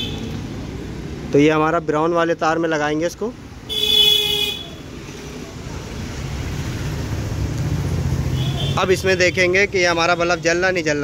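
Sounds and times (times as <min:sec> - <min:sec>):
traffic rumble: 0:00.0 - 0:11.0
vehicle horn toot: 0:03.7 - 0:04.7.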